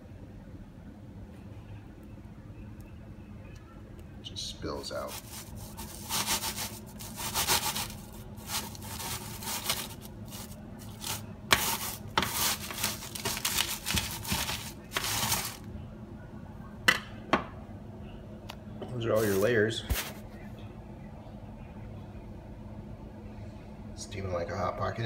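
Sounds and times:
knife sawing through crust: 5.1 - 15.6.

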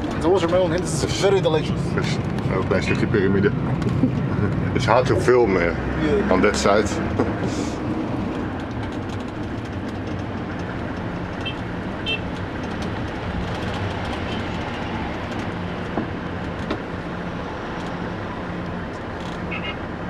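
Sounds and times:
low engine hum: 0.0 - 20.0
road rumble: 0.0 - 20.0.

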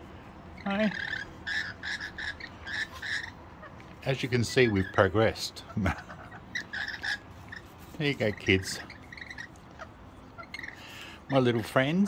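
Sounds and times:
lorikeets chattering: 0.5 - 12.0.

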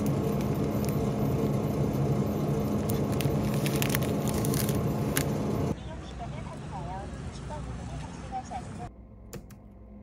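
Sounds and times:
refrigerator low hum: 0.0 - 10.0
plastic bread package crinkling: 2.7 - 5.4.

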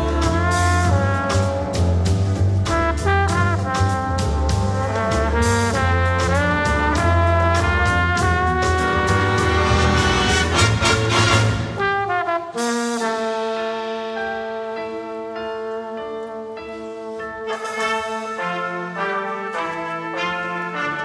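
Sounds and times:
jazz big band playing: 0.0 - 21.0.

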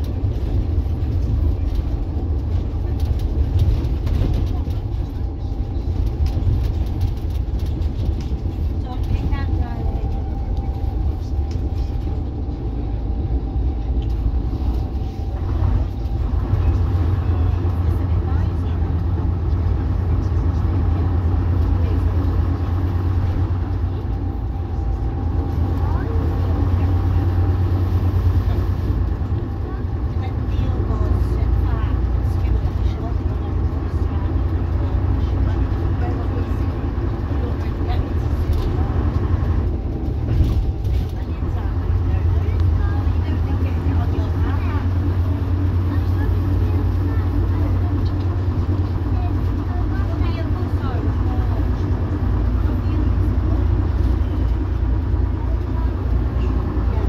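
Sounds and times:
diesel engine drone: 0.0 - 57.0.

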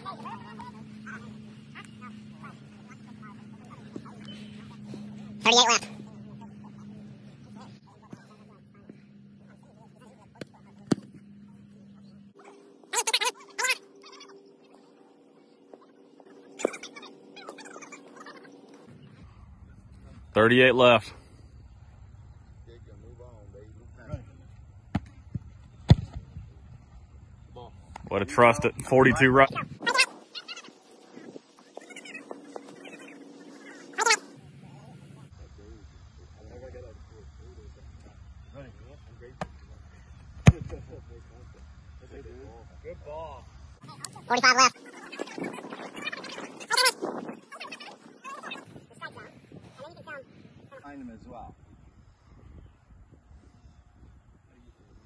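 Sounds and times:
steady low hum: 0.0 - 47.6
foot kicking football: 10.3 - 11.2, 24.9 - 26.6, 40.4 - 40.8
loud pitched animal calls: 12.4 - 14.5, 16.3 - 18.8, 29.5 - 30.9, 31.6 - 34.4, 44.3 - 48.8.

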